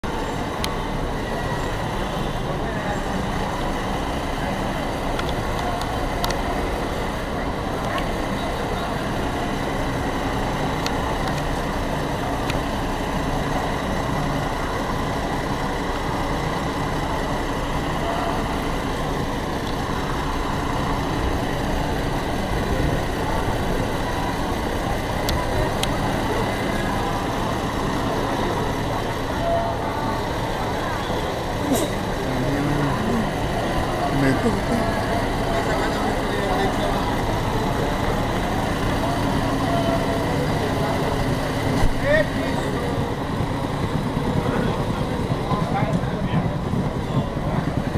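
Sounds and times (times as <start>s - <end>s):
vehicle engine running: 0.0s - 47.9s
people talking: 0.1s - 47.9s.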